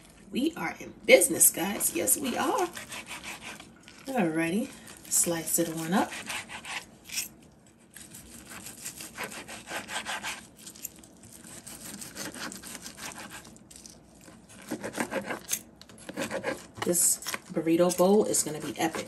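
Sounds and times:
knife sawing on cutting board: 0:01.8 - 0:03.7, 0:05.8 - 0:06.9, 0:08.3 - 0:10.5, 0:11.4 - 0:13.5, 0:14.6 - 0:16.8, 0:18.4 - 0:19.0.

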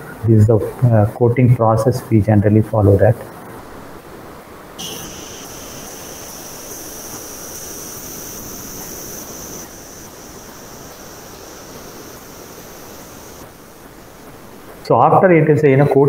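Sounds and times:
steady hissing with high whine: 0:03.5 - 0:16.0.

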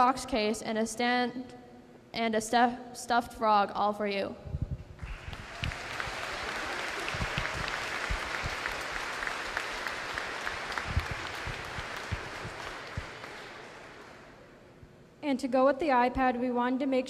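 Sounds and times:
audience applauding: 0:05.0 - 0:14.5.

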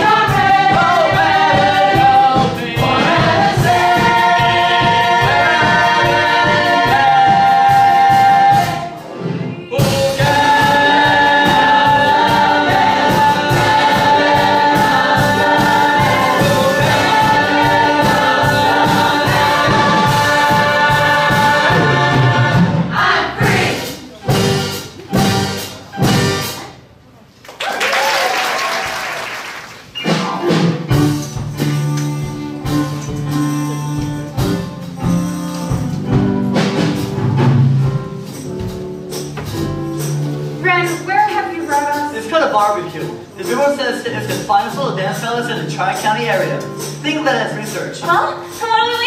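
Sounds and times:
audience applause: 0:27.4 - 0:30.0.

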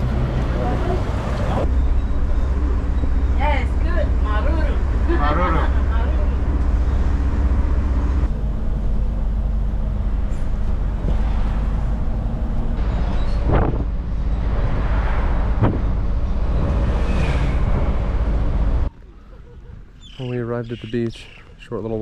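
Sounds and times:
bus engine and road rumble: 0:00.0 - 0:22.0.

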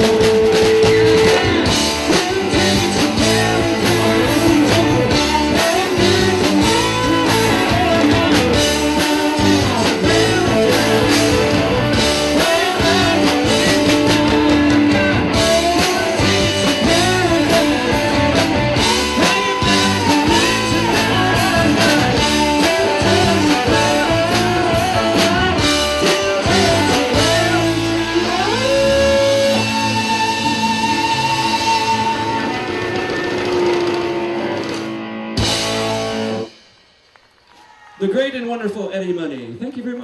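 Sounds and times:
live rock band playing: 0:00.0 - 0:37.3.

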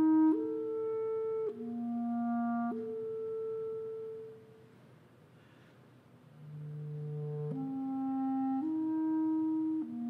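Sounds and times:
clarinet playing held notes: 0:00.0 - 0:04.6, 0:06.4 - 0:10.0.

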